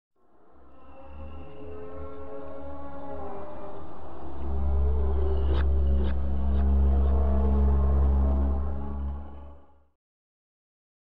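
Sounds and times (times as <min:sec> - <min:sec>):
deep rumbling drone: 0:00.7 - 0:09.7.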